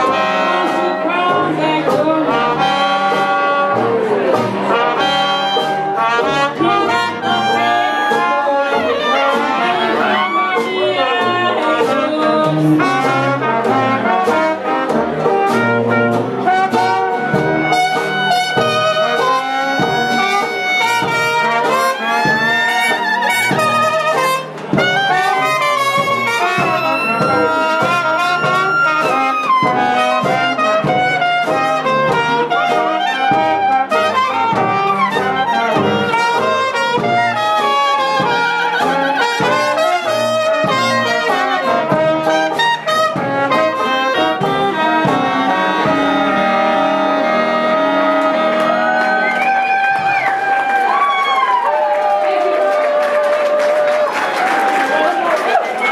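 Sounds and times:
trombone sliding between notes: 0:00.0 - 0:51.2
jazz band playing: 0:00.0 - 0:55.9.

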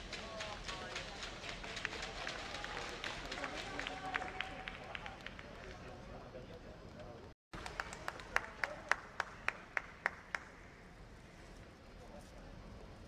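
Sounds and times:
indistinct voices in a hall: 0:00.0 - 0:13.0.

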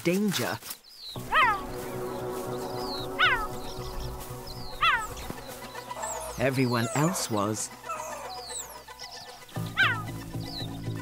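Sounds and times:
background music with held notes: 0:01.1 - 0:11.0
mongoose calls falling in pitch: 0:09.8 - 0:10.1.

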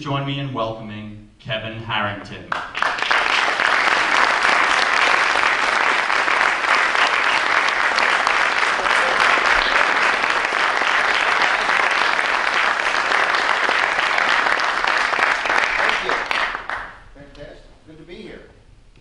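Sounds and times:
audience applauding: 0:02.5 - 0:17.1.

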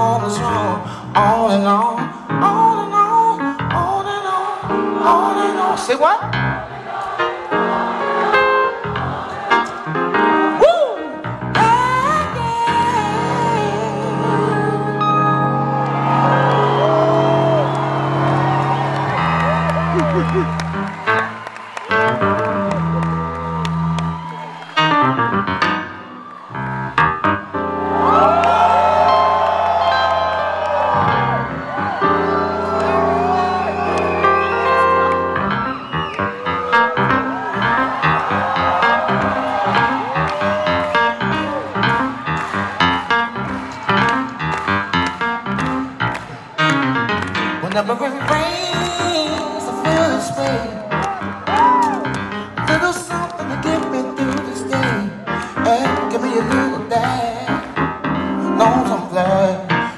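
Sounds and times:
keyboard chords: 0:00.0 - 0:59.9
audience whooping: 0:06.6 - 0:12.2, 0:12.8 - 0:47.6, 0:48.2 - 0:57.1.

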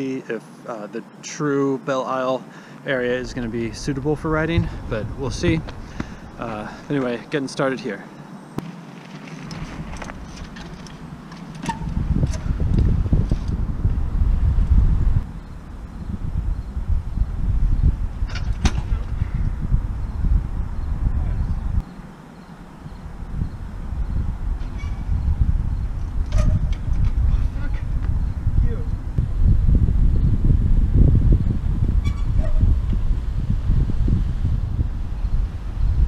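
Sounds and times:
wind buffeting microphone: 0:02.9 - 0:07.4, 0:09.4 - 0:36.0.

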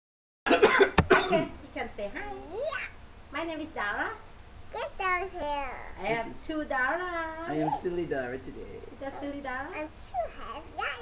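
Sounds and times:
person coughing and vocalising: 0:00.5 - 0:01.6.

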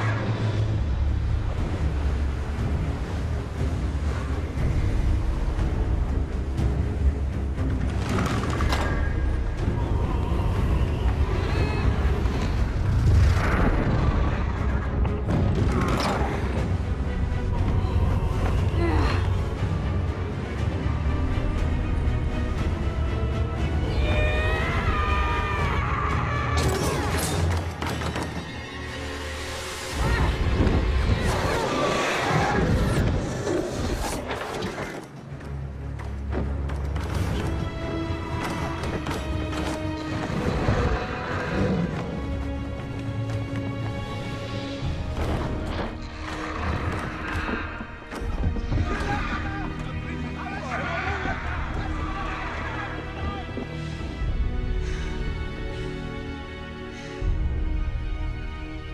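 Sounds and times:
dramatic film score: 0:00.0 - 0:58.9.

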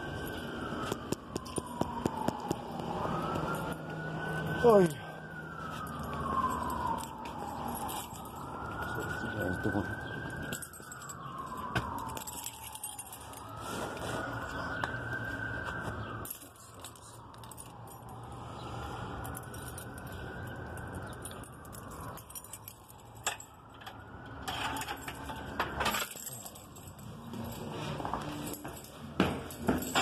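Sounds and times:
emergency siren wailing: 0:00.0 - 0:30.0
keys jangling: 0:05.7 - 0:13.6, 0:16.2 - 0:18.4, 0:19.2 - 0:30.0.

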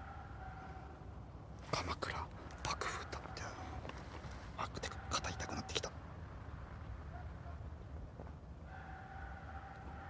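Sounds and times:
person whispering: 0:01.6 - 0:03.8, 0:04.6 - 0:06.0.

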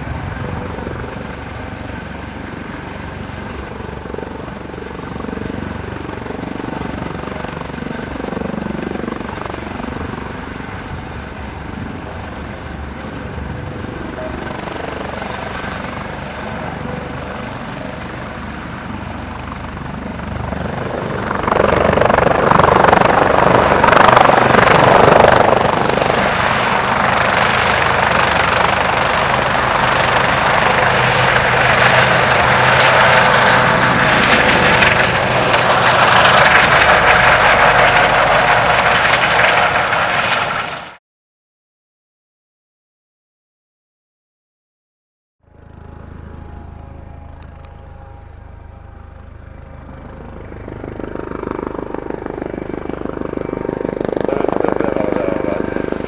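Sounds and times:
helicopter hovering: 0:00.0 - 0:41.0, 0:45.4 - 0:56.0.

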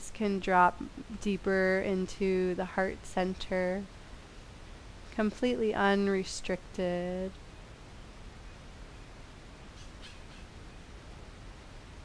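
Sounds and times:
low background hum: 0:00.0 - 0:12.0
bird calling faintly: 0:08.4 - 0:10.9.

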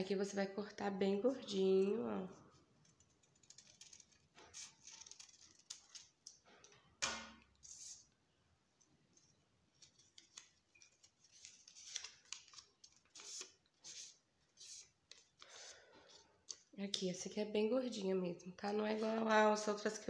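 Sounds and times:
scissors snipping paper: 0:02.9 - 0:06.4
paper rustling and crinkling: 0:02.9 - 0:06.7, 0:09.7 - 0:16.7.

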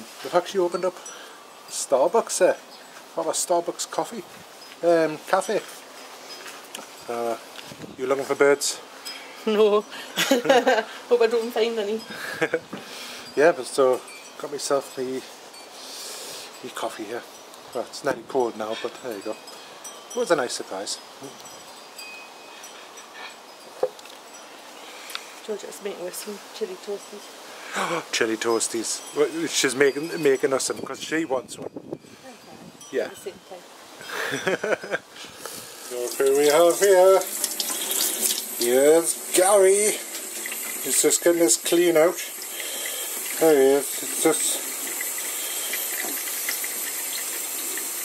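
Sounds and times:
steady background hiss: 0:00.0 - 0:48.0
water splashes: 0:35.9 - 0:48.0.

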